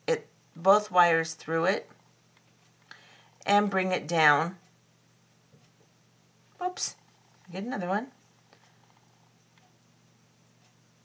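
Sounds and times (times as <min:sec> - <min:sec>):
steady low hum: 0:00.0 - 0:11.0
faint tick: 0:08.4 - 0:09.8, 0:10.6 - 0:10.8.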